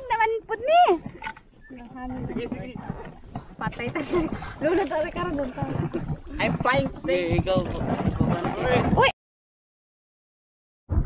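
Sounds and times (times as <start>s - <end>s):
people talking and calling out: 0.0s - 9.1s.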